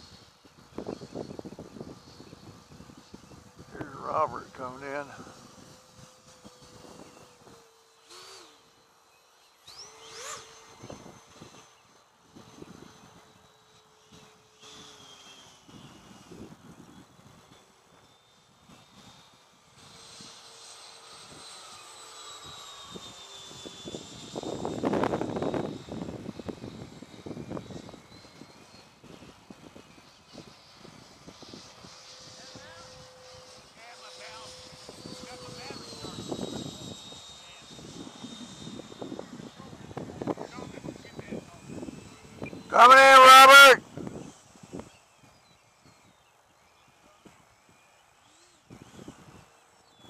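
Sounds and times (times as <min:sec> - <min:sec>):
electric jet whine: 0:00.0 - 0:50.0.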